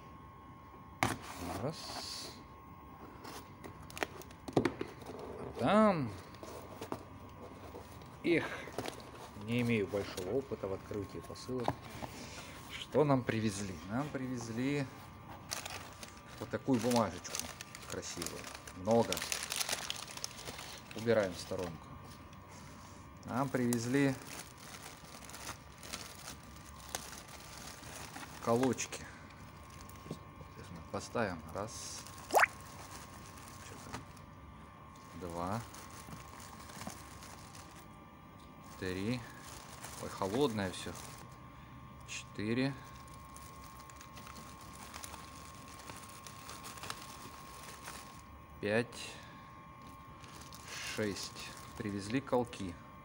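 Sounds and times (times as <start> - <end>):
faint steady hum: 0.0 - 53.0.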